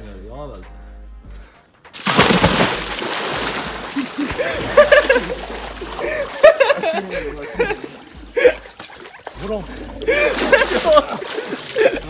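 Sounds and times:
loud splash into water: 2.0s - 6.5s, 10.1s - 11.9s
water churning: 2.0s - 12.0s.

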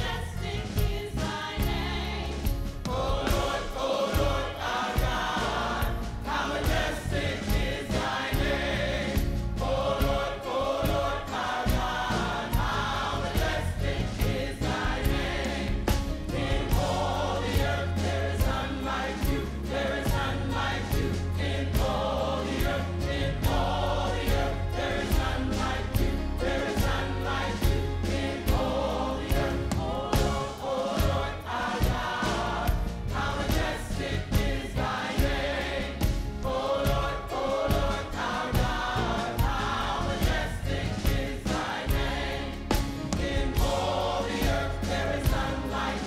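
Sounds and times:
gospel choir singing: 0.0s - 46.0s.

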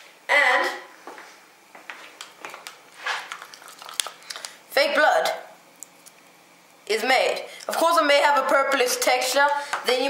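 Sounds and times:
spoon clicking and scraping tub: 2.2s - 4.5s
metal spoon stirring thick liquid: 3.0s - 4.5s.

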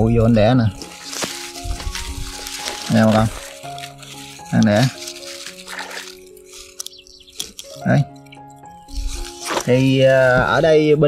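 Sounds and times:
background music with held notes: 0.0s - 11.0s
dry grass rustling and crackling: 0.0s - 11.0s.

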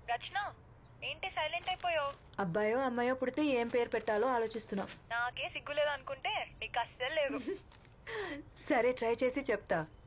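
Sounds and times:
woman talking on a phone: 0.0s - 7.6s, 8.4s - 10.0s.

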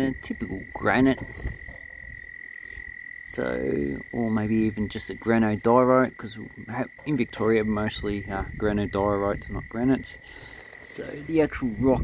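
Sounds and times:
person speaking: 3.3s - 12.0s.

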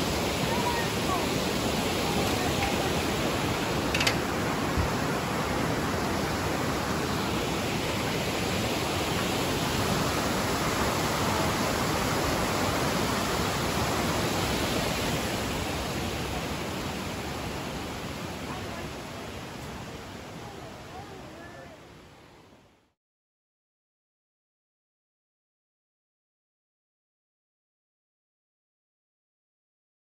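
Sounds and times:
river rapids rushing over boulders: 0.0s - 22.2s.

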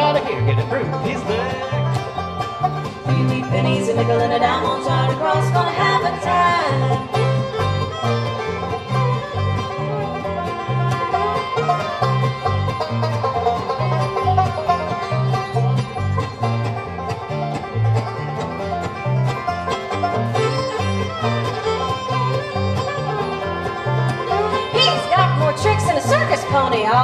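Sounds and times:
bluegrass band playing: 0.0s - 27.0s
upright bass notes: 0.0s - 27.0s.

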